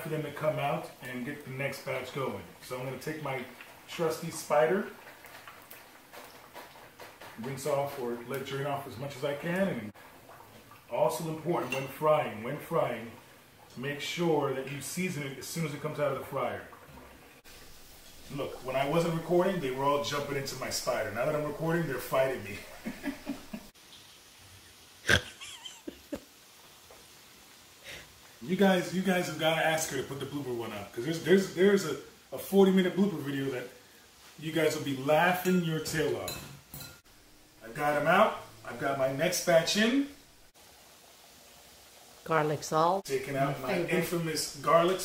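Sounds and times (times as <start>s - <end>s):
frying oil sizzle and crackles: 0.0s - 45.0s
man chuckling: 22.6s - 23.7s, 25.1s - 26.3s.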